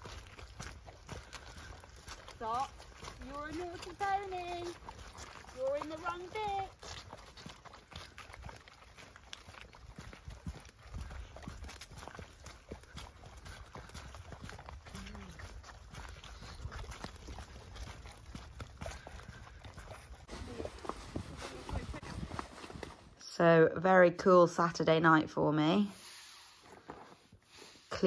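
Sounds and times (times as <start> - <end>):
horse hooves walking on mud: 0.0 - 28.0.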